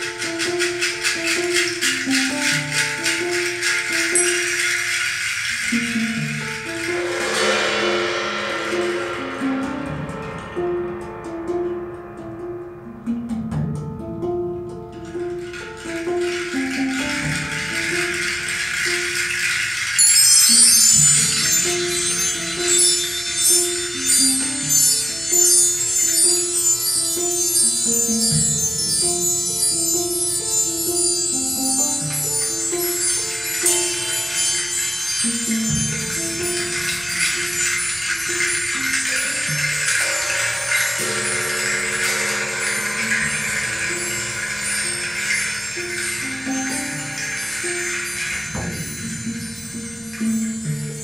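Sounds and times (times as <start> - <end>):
plucked notes: 0.0 - 51.0
rattling percussion: 0.0 - 51.0
sustained low notes: 6.9 - 14.1.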